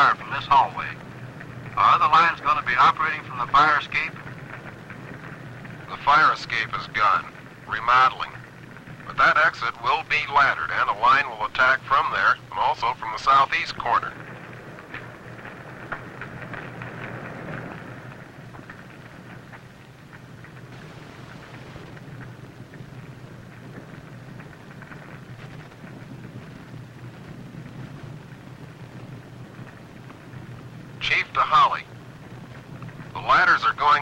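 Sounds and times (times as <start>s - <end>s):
fire roaring and crackling: 0.0s - 34.0s
low steady hum: 0.0s - 34.0s.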